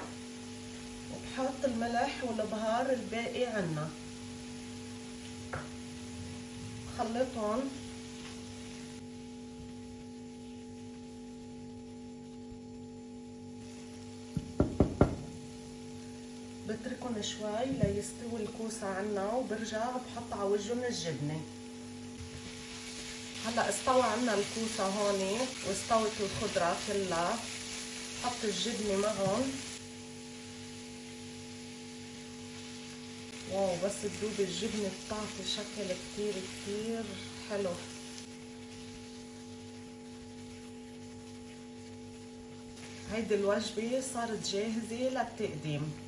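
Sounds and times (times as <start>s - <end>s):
vegetables sizzling in a pan: 0.0s - 46.0s.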